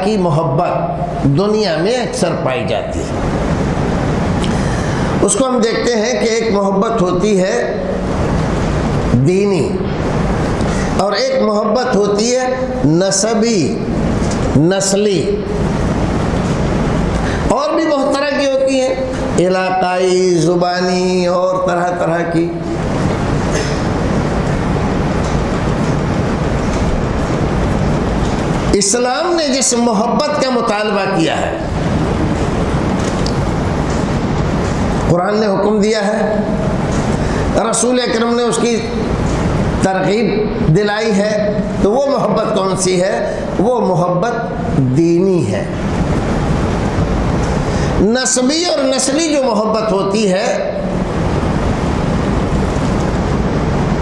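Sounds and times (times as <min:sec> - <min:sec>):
loud steady rumbling: 0:00.0 - 0:54.0
steady rushing noise: 0:00.0 - 0:54.0.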